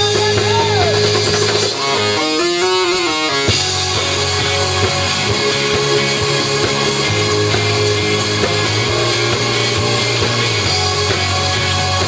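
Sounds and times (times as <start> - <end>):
drum kit: 0.0 - 12.0
electric bass: 0.0 - 12.0
electric guitars: 0.0 - 12.0.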